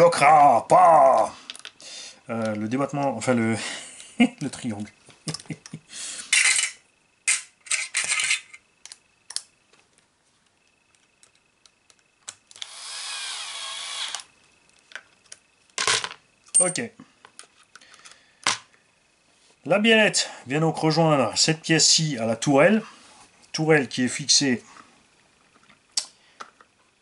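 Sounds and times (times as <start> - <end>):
plastic parts clicking and knocking: 1.5 - 1.8
cordless drill whining: 12.6 - 14.3.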